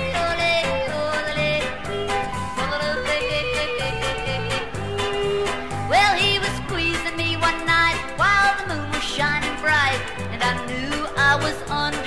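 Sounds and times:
country band accompaniment: 0.0 - 12.0.

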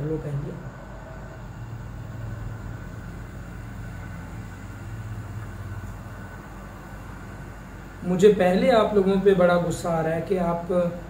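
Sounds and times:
faint background noise: 0.0 - 11.0
steady low hum: 0.0 - 11.0.

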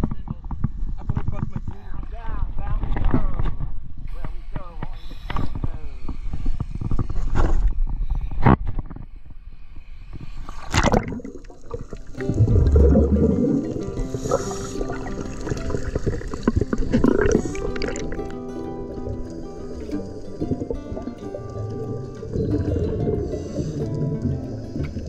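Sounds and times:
seawater sloshing and splashing: 10.5 - 25.0
background music with sustained notes: 11.8 - 25.0.

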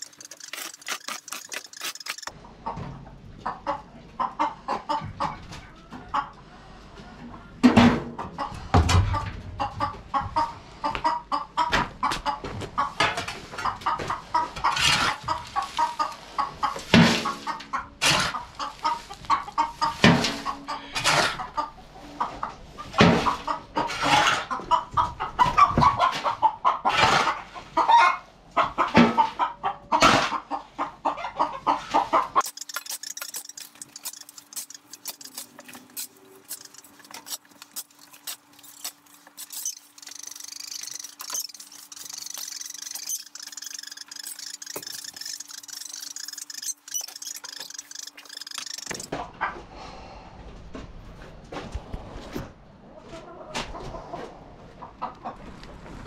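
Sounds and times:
chickens clucking: 0.0 - 49.8, 52.8 - 56.0.

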